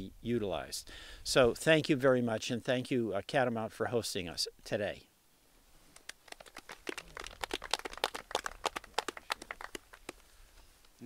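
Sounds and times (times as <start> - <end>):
small group applauding: 5.9 - 10.2.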